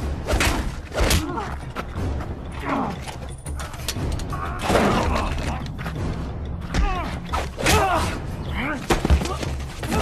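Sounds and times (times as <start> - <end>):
mechanical clattering and creaking: 2.9 - 6.1.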